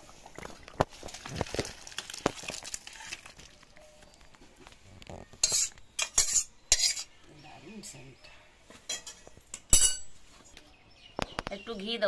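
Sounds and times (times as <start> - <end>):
metal ladle scraping cookware: 5.4 - 7.2.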